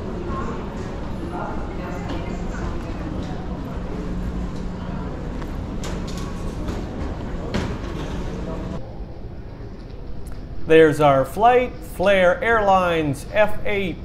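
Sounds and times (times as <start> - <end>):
faint voices: 0.0 - 10.2
steady low hum: 0.0 - 14.0.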